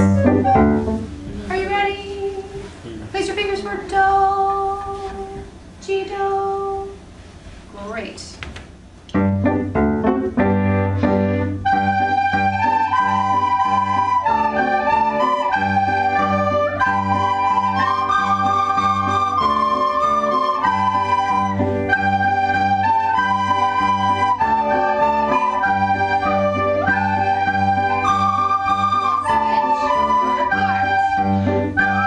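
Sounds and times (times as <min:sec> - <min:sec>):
recorders playing a melody: 0:00.0 - 0:01.7, 0:09.1 - 0:32.0.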